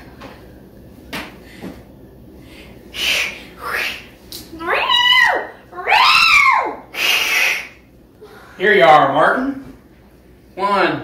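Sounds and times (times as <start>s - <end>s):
cat hissing: 2.9s - 4.2s, 6.9s - 7.8s.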